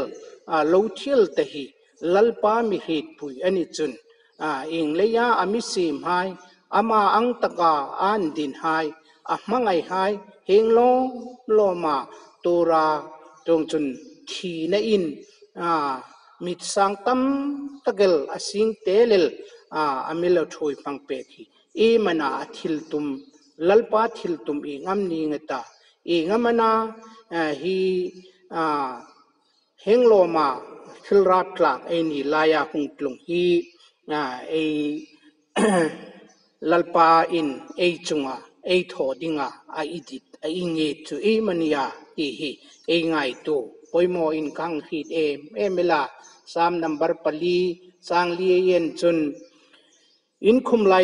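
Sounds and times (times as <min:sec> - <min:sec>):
man preaching: 0:00.0 - 0:29.0, 0:29.8 - 0:35.0, 0:35.6 - 0:49.3, 0:50.4 - 0:51.0
man speaking: 0:00.0 - 0:29.0, 0:29.9 - 0:35.0, 0:35.6 - 0:49.3
man clearing throat: 0:35.6 - 0:36.1.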